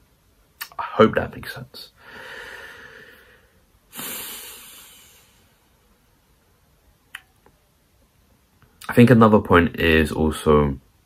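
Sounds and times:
man breathing: 0:02.0 - 0:05.8.

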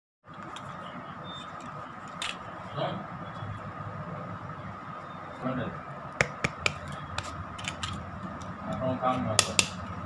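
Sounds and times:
steady background hum: 0:00.3 - 0:10.0.

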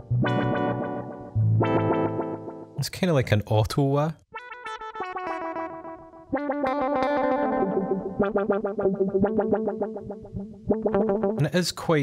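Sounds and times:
electric guitar with auto-wah: 0:04.4 - 0:11.4.

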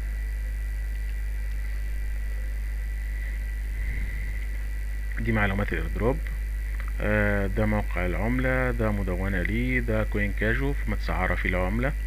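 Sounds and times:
faint high whine: 0:00.0 - 0:12.0
steady low hum: 0:00.0 - 0:12.0.

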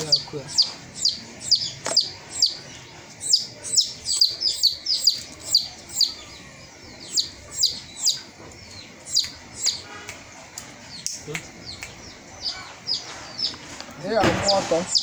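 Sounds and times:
bird chirping: 0:00.0 - 0:15.0.

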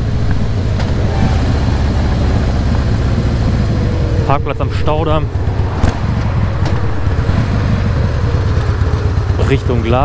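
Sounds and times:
motorcycle engine cruising: 0:00.0 - 0:10.0
wind and road noise: 0:00.0 - 0:10.0.

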